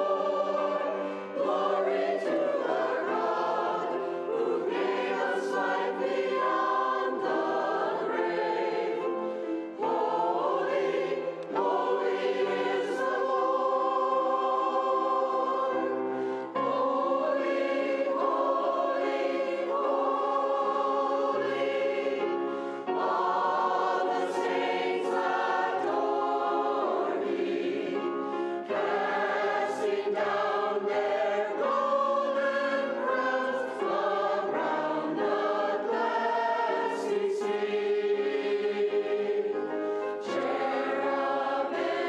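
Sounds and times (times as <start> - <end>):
choir singing in parts: 0.0 - 42.0
piano: 0.0 - 42.0.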